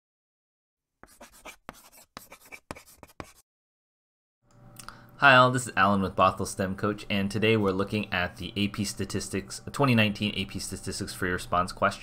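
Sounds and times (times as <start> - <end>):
chalk scratching on blackboard: 1.0 - 3.4.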